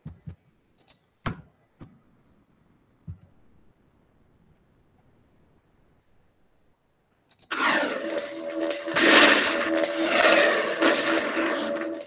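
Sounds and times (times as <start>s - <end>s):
held low notes: 7.5s - 12.0s
whooshing crackling sound effects: 7.5s - 12.0s.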